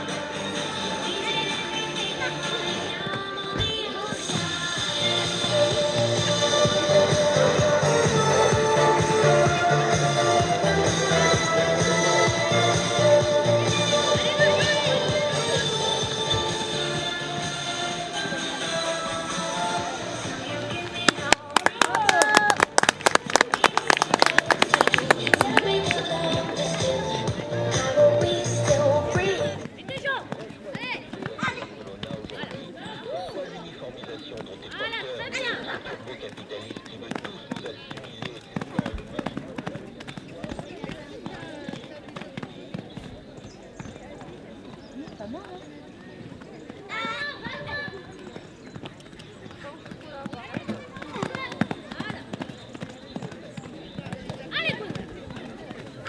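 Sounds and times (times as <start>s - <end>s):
people's voices: 0.0s - 56.0s
hoofbeats on sand: 36.2s - 56.0s.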